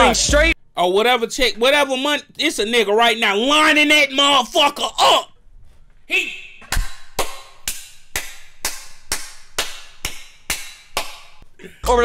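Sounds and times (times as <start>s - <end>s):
hand claps in steady rhythm: 6.6s - 11.4s.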